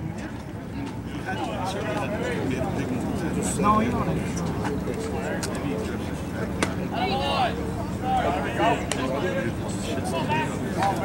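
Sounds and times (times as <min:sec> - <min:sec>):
spectator chatter: 0:00.0 - 0:11.0
steady low hum: 0:00.0 - 0:11.0.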